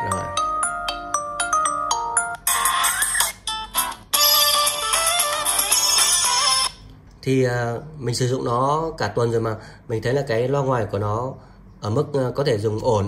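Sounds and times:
phone ringtone melodies: 0:00.0 - 0:06.8.

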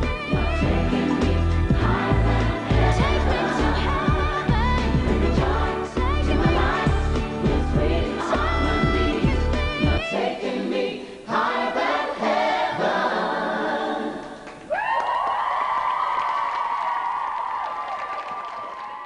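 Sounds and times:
group singing unaccompanied: 0:00.0 - 0:14.5.

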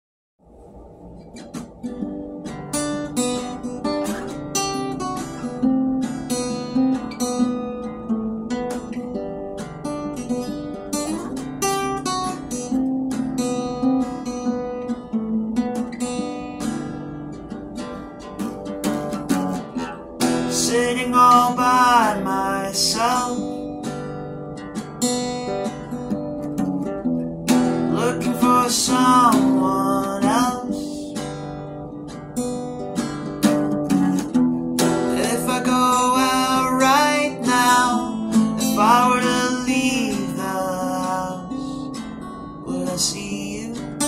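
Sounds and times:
acoustic guitar strumming chords: 0:00.5 - 0:44.0.

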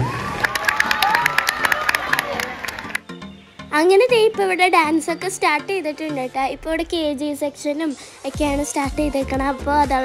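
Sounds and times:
audience cheering: 0:00.0 - 0:03.0
audience clapping: 0:00.0 - 0:03.1.

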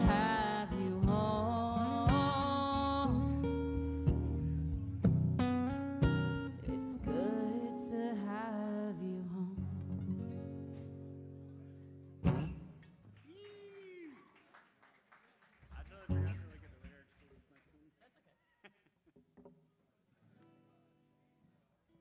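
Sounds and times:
acoustic guitar chords ringing: 0:00.0 - 0:12.8.

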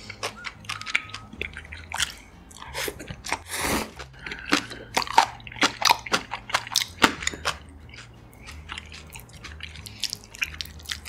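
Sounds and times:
chopsticks in sticky noodles: 0:00.0 - 0:11.0.

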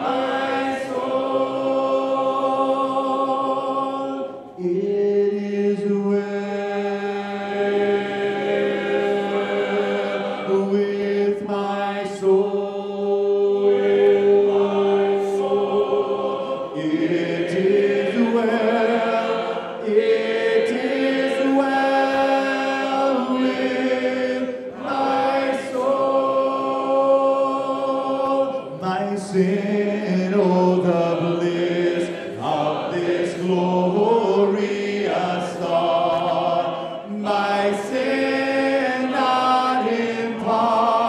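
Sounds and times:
congregation singing a hymn: 0:00.0 - 0:41.0
man singing through microphone: 0:03.8 - 0:07.6, 0:10.5 - 0:14.6, 0:20.6 - 0:23.5, 0:27.9 - 0:41.0.

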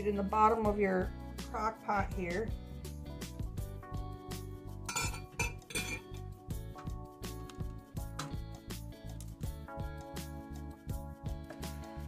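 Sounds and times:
background music with held notes: 0:00.0 - 0:12.0
clinks against ceramic crock: 0:04.9 - 0:06.1.

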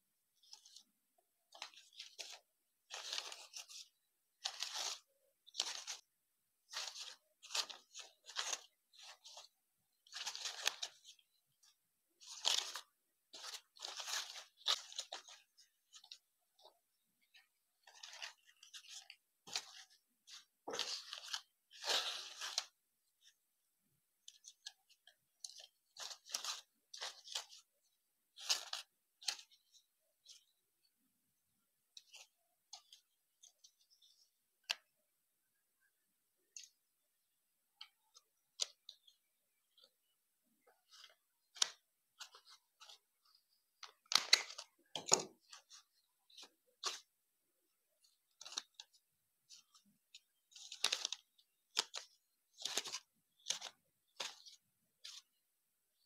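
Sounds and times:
stiff paper rustling and crinkling: 0:01.5 - 0:23.3, 0:24.3 - 0:30.5, 0:48.0 - 0:55.3.

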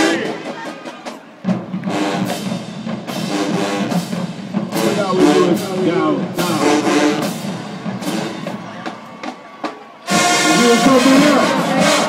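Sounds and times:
marching band music: 0:00.0 - 0:12.0.

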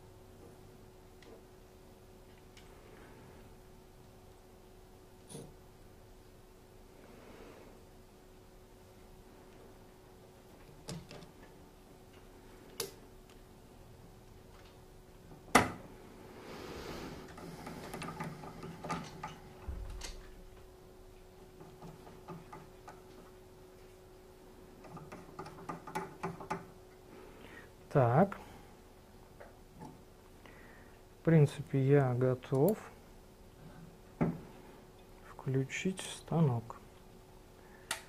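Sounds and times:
faint steady hum: 0:00.0 - 0:38.0.

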